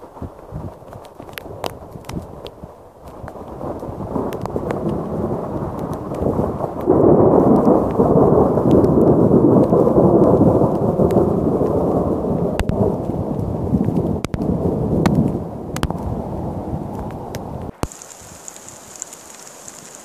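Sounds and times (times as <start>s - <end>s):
rain clicking on microphone: 0.0s - 20.0s
thunder rolling: 3.4s - 20.0s.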